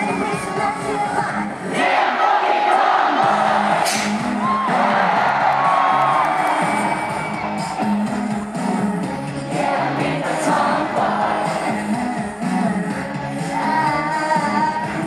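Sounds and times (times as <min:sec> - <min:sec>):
pop song over loudspeakers: 0:00.0 - 0:15.0
women singing: 0:00.0 - 0:15.0
crowd cheering and screaming: 0:01.7 - 0:08.4.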